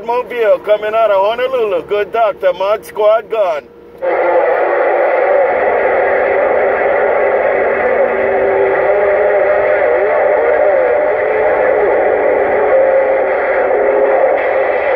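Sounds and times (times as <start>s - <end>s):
loud radio static: 0.0s - 14.9s.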